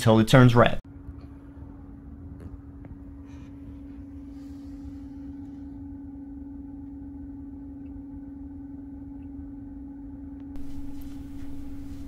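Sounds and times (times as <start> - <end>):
steady low hum: 0.0 - 12.0
low rumble: 0.8 - 12.0.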